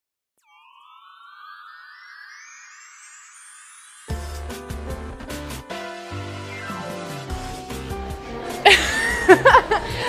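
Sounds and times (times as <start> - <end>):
intro music: 0.4 - 10.0
synthesized riser: 6.2 - 7.7.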